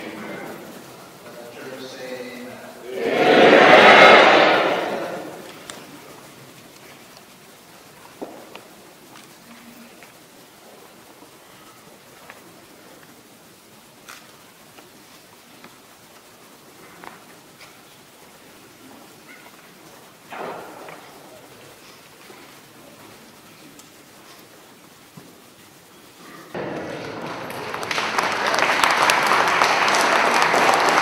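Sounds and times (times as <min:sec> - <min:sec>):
faint clicks: 0:23.3 - 0:24.5.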